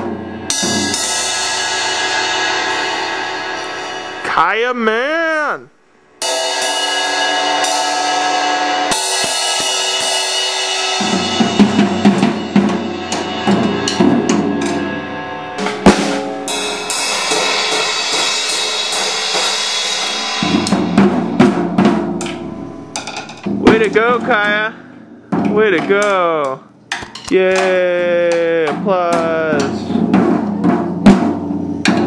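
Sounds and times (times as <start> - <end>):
cymbals crashing: 0.0 - 4.4, 6.2 - 26.1
irregular drum hits: 0.0 - 4.7, 6.1 - 32.0.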